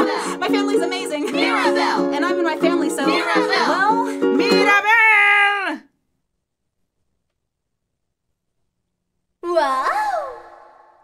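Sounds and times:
strummed ukulele: 0.0s - 5.0s
woman singing: 0.0s - 5.8s.

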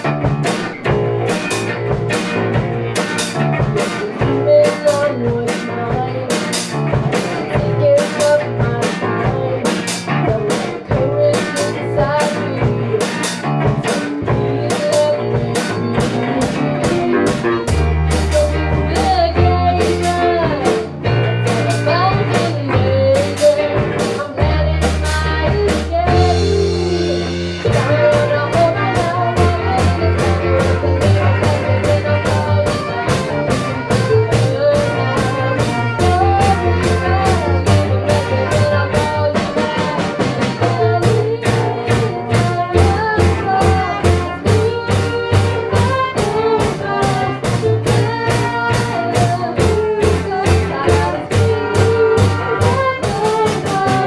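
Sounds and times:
bass guitar: 0.0s - 54.0s
drum kit: 0.0s - 54.0s
electric guitars: 0.0s - 54.0s
girl singing lead vocal: 3.6s - 54.0s.

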